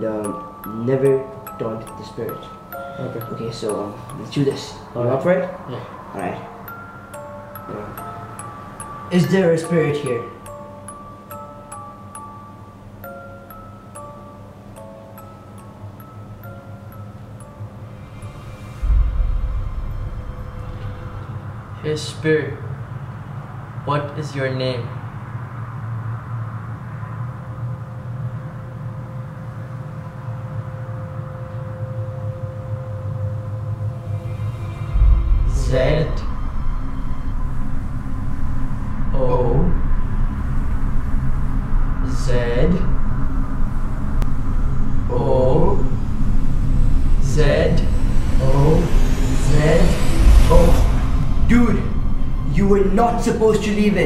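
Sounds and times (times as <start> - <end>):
low sustained drone: 0.0 - 23.9, 24.8 - 54.0
deep low rumble: 17.8 - 21.9, 33.3 - 54.0
thin held tone: 43.0 - 54.0.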